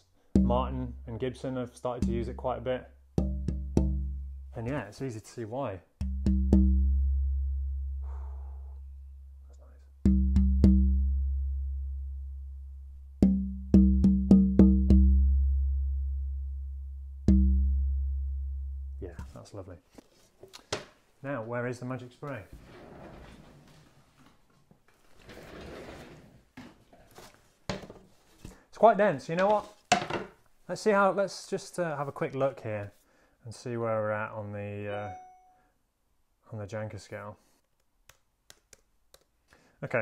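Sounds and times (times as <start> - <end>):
plastic bottle handling rustle: 27.0 - 28.6, 29.4 - 29.9.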